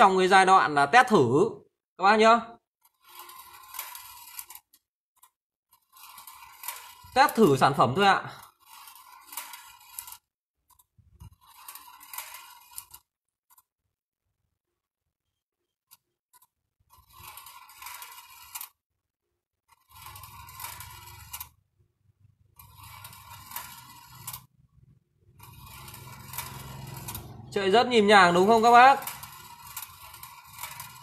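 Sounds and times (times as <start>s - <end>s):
marbles rattling on wire track: 2.8s - 13.7s, 15.9s - 18.8s, 19.6s - 31.0s.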